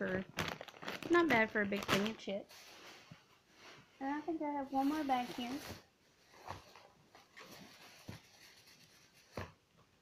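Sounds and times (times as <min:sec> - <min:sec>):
packages rustling: 0:00.0 - 0:03.2, 0:04.1 - 0:09.7.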